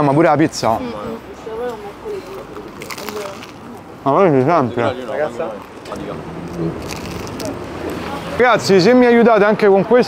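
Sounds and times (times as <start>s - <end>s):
low steady street hum: 0.0s - 10.0s
paper napkin crackling: 6.5s - 8.0s.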